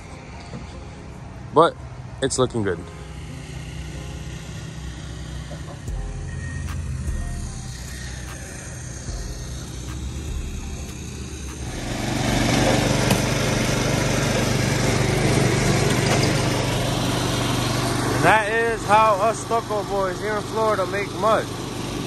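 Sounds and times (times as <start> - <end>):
mortar mixer engine running: 3.2 - 22.0.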